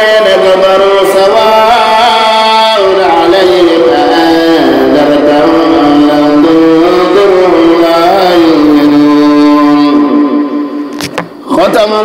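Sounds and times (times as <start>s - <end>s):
person chanting a long note: 0.0s - 11.8s.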